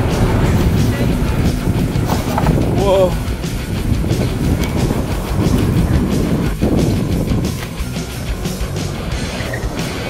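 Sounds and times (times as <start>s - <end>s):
wheels rumbling and rattling: 0.0s - 10.0s
wind buffeting microphone: 0.0s - 10.0s.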